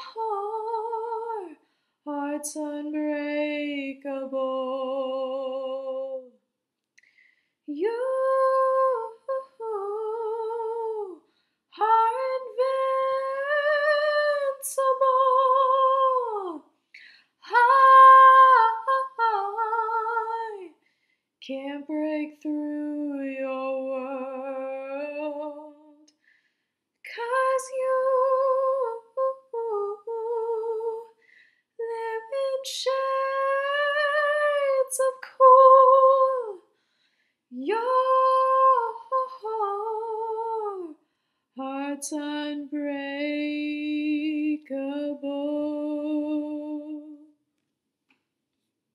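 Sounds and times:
woman singing unaccompanied: 0.0s - 6.3s, 7.7s - 11.2s, 11.8s - 16.7s, 17.4s - 20.8s, 21.4s - 26.1s, 27.1s - 31.2s, 31.8s - 36.7s, 37.5s - 41.0s, 41.6s - 47.3s
breath: 1.6s - 2.0s, 7.0s - 7.7s, 11.2s - 11.7s, 16.9s - 17.4s, 20.8s - 21.4s, 26.1s - 26.8s, 31.2s - 31.8s, 36.7s - 37.5s, 41.0s - 41.6s.

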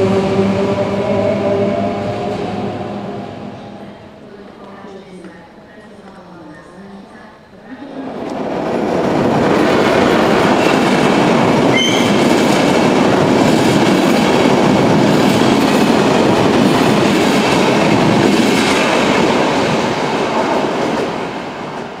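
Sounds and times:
train wheels rushing on rails: 8.0s - 22.0s
brief high squeal: 11.7s - 12.2s.

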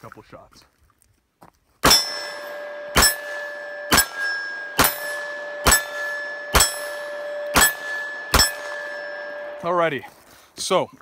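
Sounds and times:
pistol shots: 1.8s - 9.6s
steady ringing tone: 1.8s - 10.0s.

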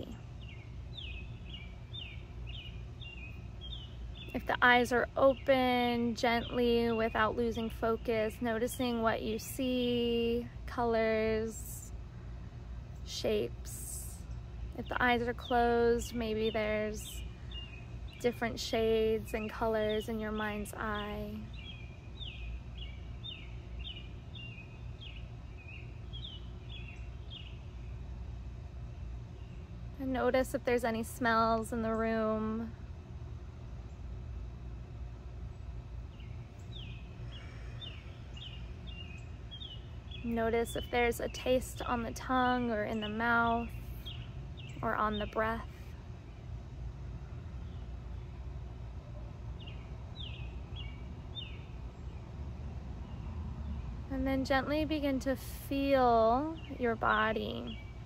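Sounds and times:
low background rumble: 0.0s - 58.0s
songbird chirping: 0.0s - 58.0s.

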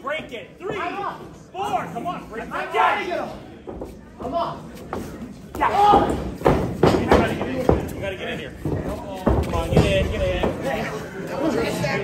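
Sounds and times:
wrestlers thudding and smacking: 3.6s - 10.8s.

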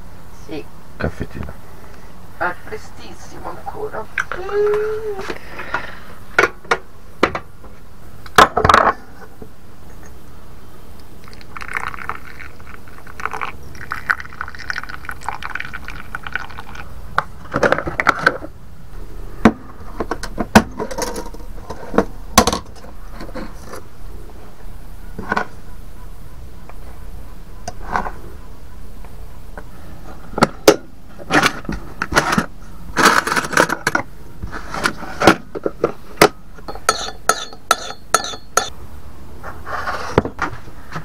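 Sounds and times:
coffee pouring into metal mug: 11.2s - 16.9s
kitchen things clinking: 36.6s - 38.7s.

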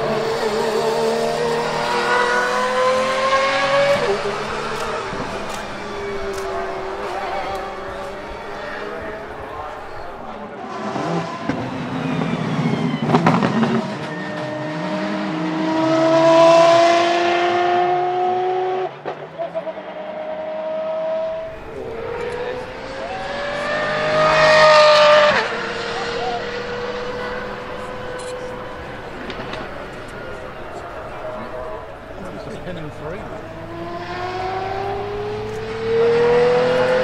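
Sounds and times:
car engine accelerating hard: 0.0s - 37.0s.

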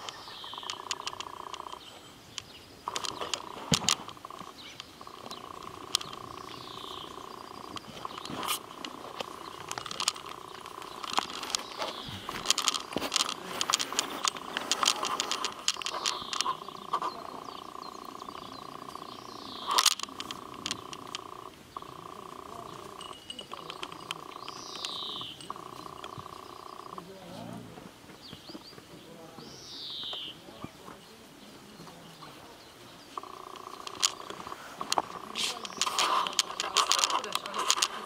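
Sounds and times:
puppies growling and scuffling: 2.9s - 29.1s, 33.0s - 38.0s.

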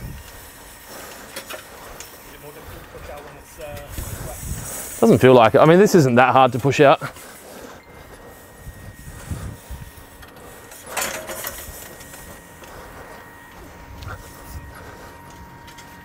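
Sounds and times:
metal leveller scraping sand: 0.0s - 16.0s.

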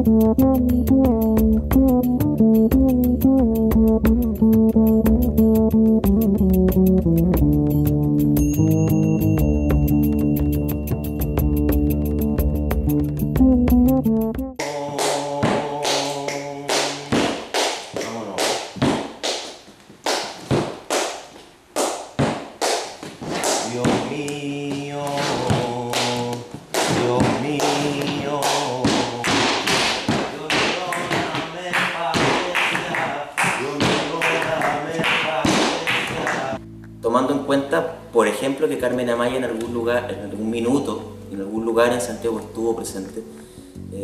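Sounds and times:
flamenco music: 0.0s - 38.2s
held sung or instrumental notes: 12.0s - 17.4s, 23.6s - 29.9s
sharp percussive strikes: 26.8s - 36.6s.

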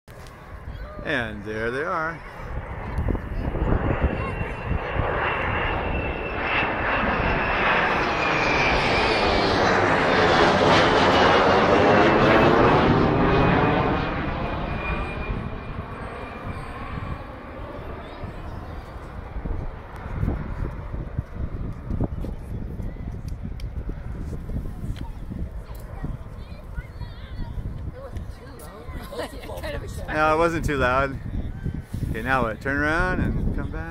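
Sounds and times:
high turbine whine: 0.1s - 33.9s
jet engines roaring past: 0.1s - 33.9s.

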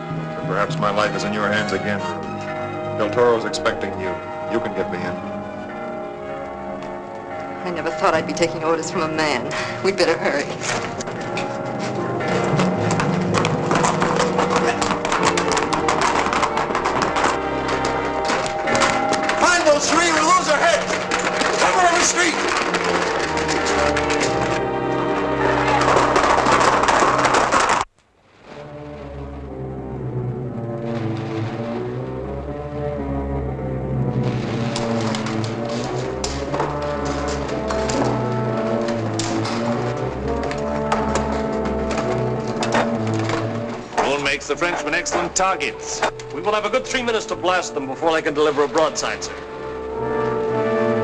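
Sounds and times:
orchestral film score: 0.0s - 51.0s.

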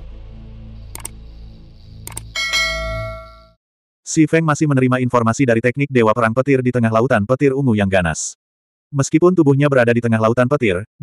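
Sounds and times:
low background music: 0.0s - 3.1s
quick clicks: 1.0s - 1.2s, 2.1s - 2.4s
bright bell ding: 2.4s - 3.6s.

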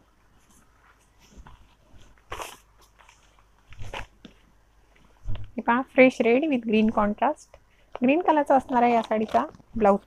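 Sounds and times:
silk fabric rustling: 0.0s - 7.2s.

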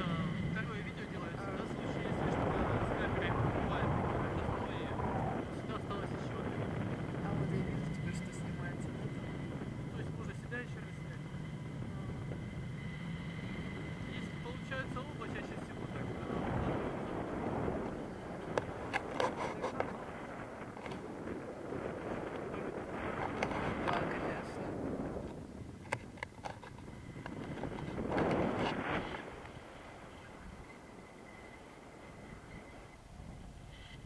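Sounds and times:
muffled voices: 0.0s - 12.6s, 13.5s - 20.6s, 22.1s - 25.1s
wind buffeting microphone: 0.0s - 34.0s.

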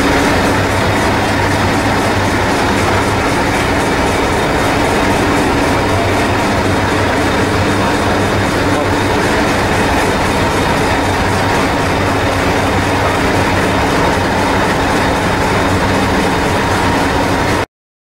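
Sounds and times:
diesel train engine idling: 0.0s - 17.6s.

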